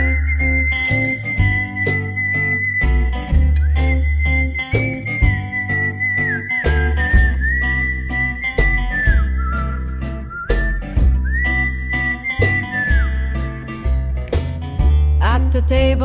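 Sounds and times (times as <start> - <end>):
whistled melody: 0.0 - 14.2
bass line: 0.0 - 16.0
steady drum beat: 8.6 - 11.4.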